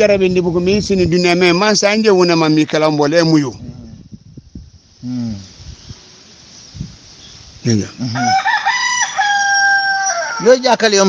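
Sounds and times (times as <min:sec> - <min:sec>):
rooster crowing: 0:08.1 - 0:10.9.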